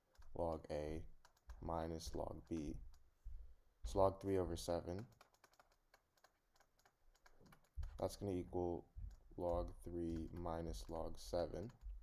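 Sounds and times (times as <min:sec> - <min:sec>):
stylus tapping on drawing tablet: 0:00.0 - 0:12.0.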